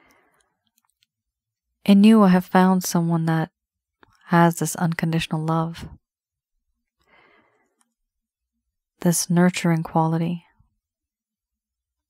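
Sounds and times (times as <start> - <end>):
woman speaking: 1.9 - 3.5, 4.3 - 6.0, 9.0 - 10.5.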